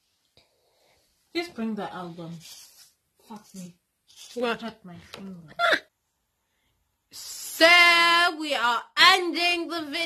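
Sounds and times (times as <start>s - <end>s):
woman speaking: 1.4s - 2.6s, 3.2s - 5.8s.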